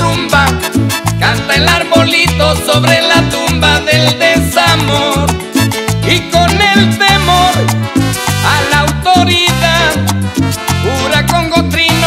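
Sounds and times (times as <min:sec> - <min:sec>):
salsa dance band playing: 0:00.0 - 0:12.0.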